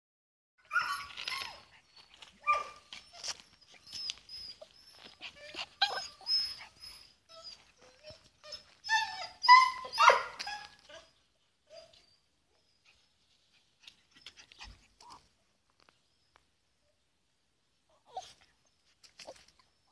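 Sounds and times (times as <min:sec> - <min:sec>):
puppy whining and yelping: 0:00.6 - 0:15.3, 0:17.9 - 0:19.9.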